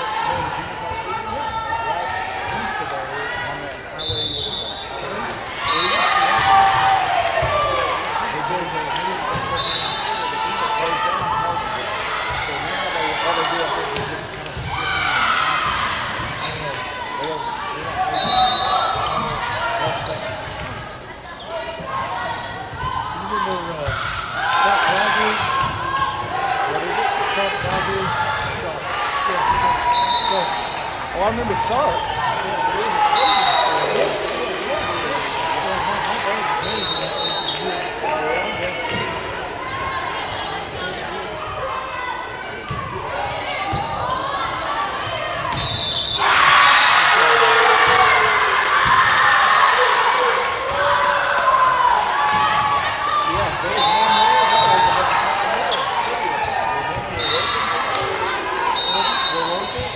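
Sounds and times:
people shouting and cheering: 0:00.0 - 0:59.9
referee's whistle blasts: 0:04.0 - 0:06.1, 0:09.4 - 0:10.1, 0:18.1 - 0:19.3, 0:29.8 - 0:30.8, 0:32.9 - 0:34.1, 0:36.6 - 0:37.7, 0:45.5 - 0:47.0, 0:53.7 - 0:55.0, 0:57.1 - 0:57.7, 0:58.6 - 0:59.9.

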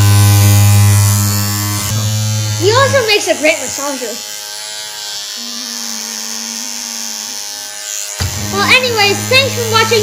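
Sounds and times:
electric motor buzzing: 0:00.0 - 0:10.0.

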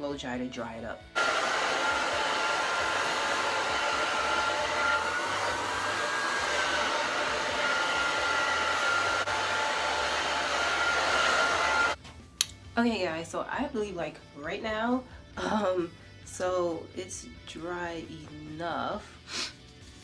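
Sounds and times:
hair dryer running: 0:01.2 - 0:12.0.

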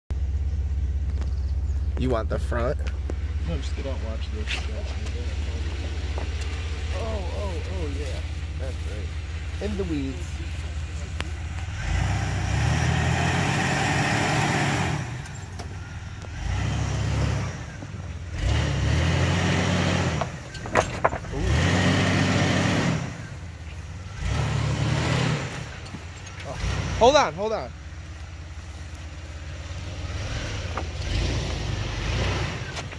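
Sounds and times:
car engine revving: 0:00.2 - 0:32.9.

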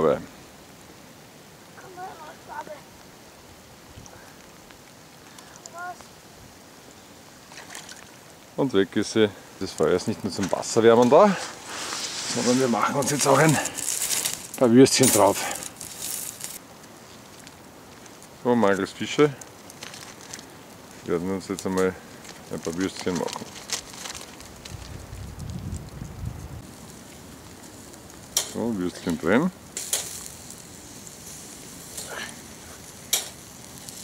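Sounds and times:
river water hissing: 0:00.0 - 0:25.0, 0:26.6 - 0:34.0
charcoal embers crackling: 0:00.0 - 0:34.0
brief hiss: 0:11.1 - 0:14.4.

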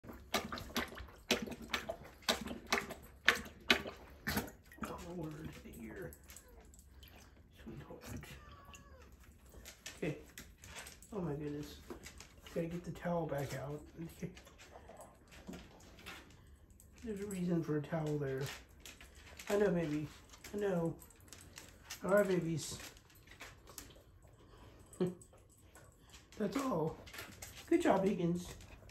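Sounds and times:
dog lapping water from bowl: 0:00.0 - 0:17.2, 0:17.9 - 0:28.9.

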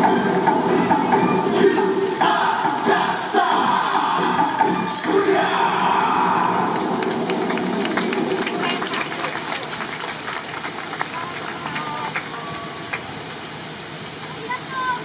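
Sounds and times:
loud dance music with voices: 0:00.6 - 0:07.0
audience clapping: 0:06.5 - 0:13.4.

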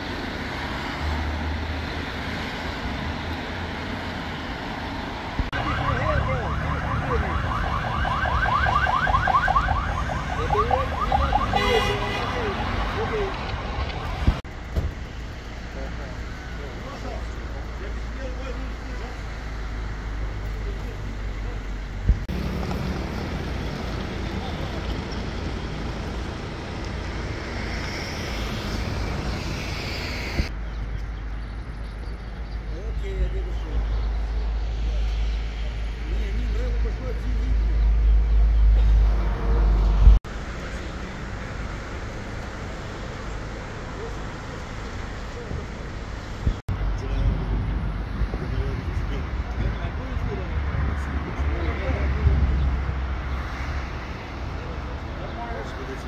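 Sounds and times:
road noise rumble: 0:00.0 - 0:56.0
electronic siren warbling: 0:05.5 - 0:11.6.

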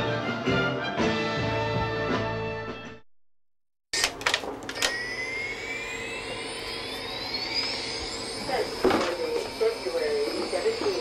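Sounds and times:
steady hum: 0:04.0 - 0:11.0
high whine rising in pitch: 0:04.8 - 0:11.0.

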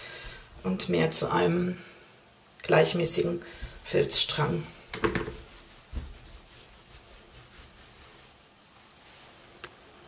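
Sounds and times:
hands rubbing wet felt on towel: 0:02.7 - 0:10.0.

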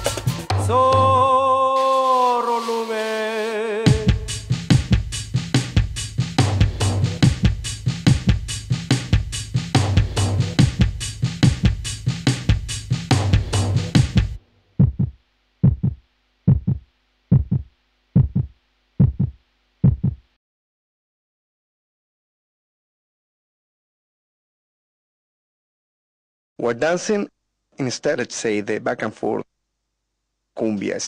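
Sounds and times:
drum kit beat: 0:00.0 - 0:20.3
heartbeat thumps: 0:03.9 - 0:20.3.

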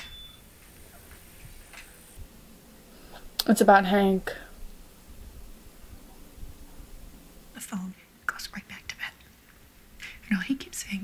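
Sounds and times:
person whispering: 0:07.6 - 0:09.2.

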